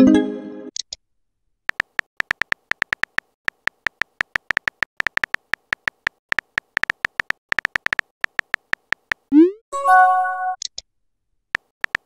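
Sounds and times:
phone keyboard key clicks: 1.7 - 9.3, 11.6 - 12.0.

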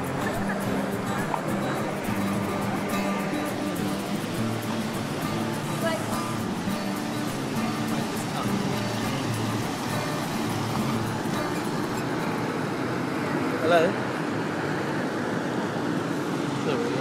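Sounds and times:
faint voices: 0.0 - 11.7
traffic noise: 0.0 - 17.0.

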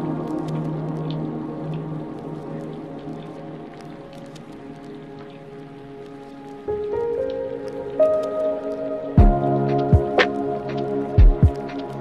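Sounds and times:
music of long held notes: 0.0 - 12.0.

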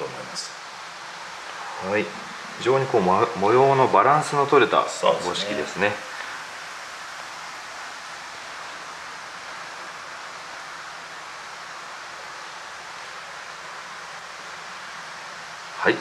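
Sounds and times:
steady rushing hiss: 0.0 - 16.0.

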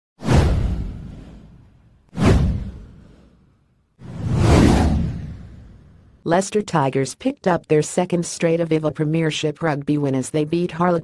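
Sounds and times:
whoosh sound effects: 4.0 - 6.0.

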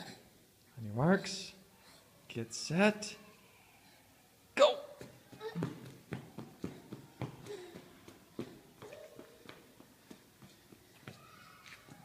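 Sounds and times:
toddler footsteps on hard floor: 5.0 - 12.0.

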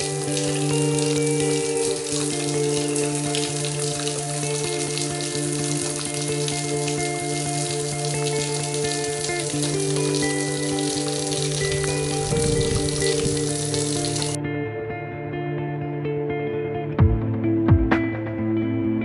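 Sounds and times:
background music with sustained chords: 0.0 - 19.0.

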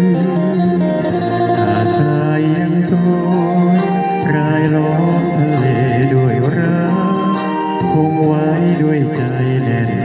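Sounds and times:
instrumental guitar music: 0.0 - 10.0.

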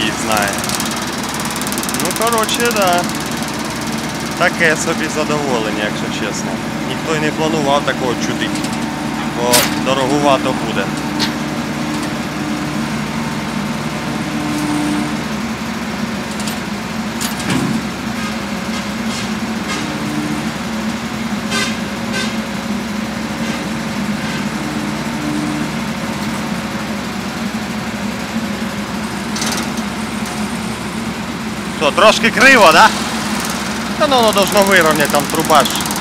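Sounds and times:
diesel engine idling: 0.0 - 36.0
short metallic clanks: 9.5 - 9.9.

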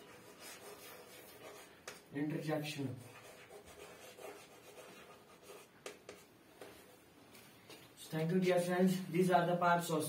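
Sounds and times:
chalk scratching on chalkboard: 0.0 - 2.0, 3.0 - 6.9
chalk tapping: 0.0 - 2.1, 3.1 - 6.8.

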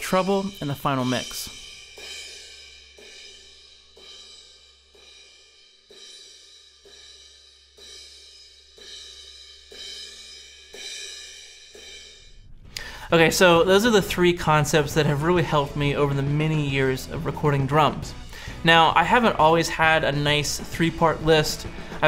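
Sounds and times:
cymbal strikes ringing: 0.0 - 16.3.

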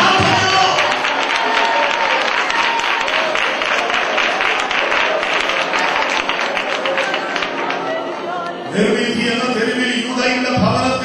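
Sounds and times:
voices praying or singing: 0.0 - 1.1, 3.0 - 11.0
crowd clapping: 0.0 - 8.7.

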